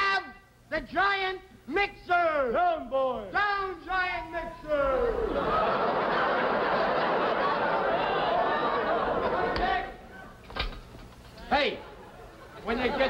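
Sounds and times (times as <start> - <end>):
audience laughing: 5.1 - 10.4, 11.7 - 13.0.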